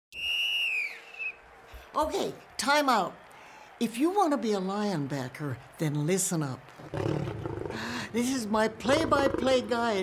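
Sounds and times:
referee's whistle blast: 0:00.1 - 0:01.4
short wavering whistle chirp: 0:00.1 - 0:01.4.

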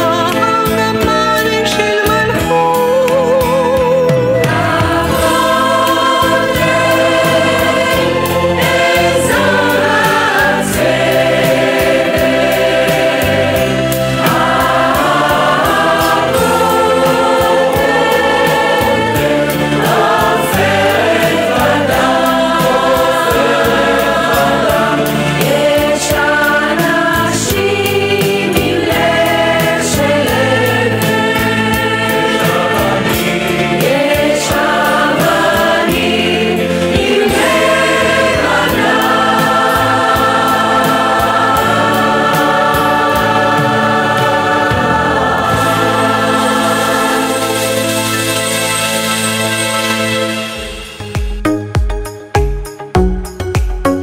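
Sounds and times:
accompaniment with steady beat: 0:02.2 - 0:54.0
mixed choir singing in harmony: 0:04.4 - 0:51.4.

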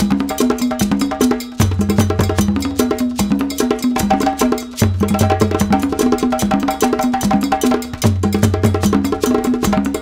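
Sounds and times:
bell-like percussion: 0:00.0 - 0:10.0.

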